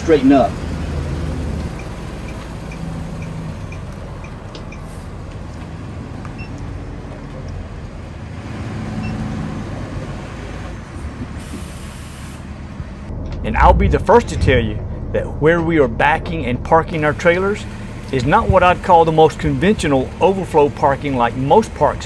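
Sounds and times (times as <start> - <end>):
diesel engine rumbling: 0.0 - 22.0
air hiss: 11.4 - 12.5.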